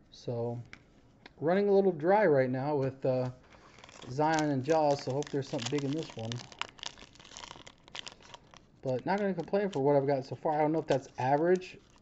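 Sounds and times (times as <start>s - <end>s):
plastic wrapper crinkling: 3.2s - 12.0s.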